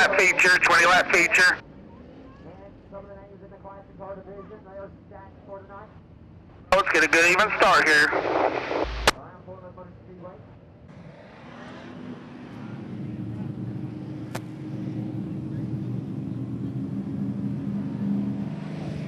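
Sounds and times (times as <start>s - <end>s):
race car engines droning: 0.0s - 8.5s, 9.4s - 19.0s.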